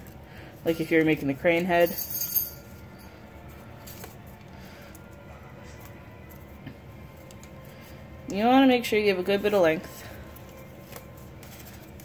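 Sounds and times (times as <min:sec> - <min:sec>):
television music: 0:00.0 - 0:12.0.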